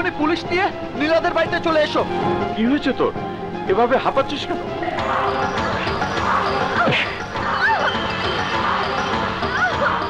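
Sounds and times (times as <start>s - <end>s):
dramatic action film music: 0.0s - 10.0s.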